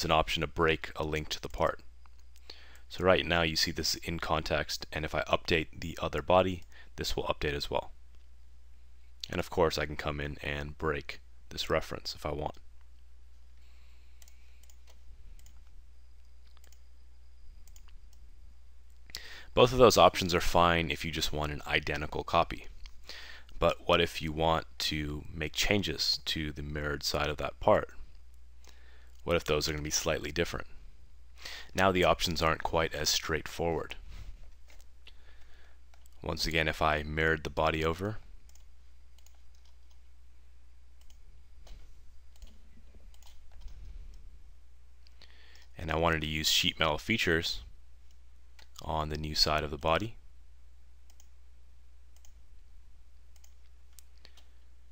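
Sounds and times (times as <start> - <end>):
low electrical hum: 0.0 - 54.9
computer mouse clicks: 14.2 - 16.8, 17.6 - 18.2, 38.5 - 40.1, 41.0 - 44.2, 51.1 - 51.4, 52.2 - 52.4, 53.3 - 54.6.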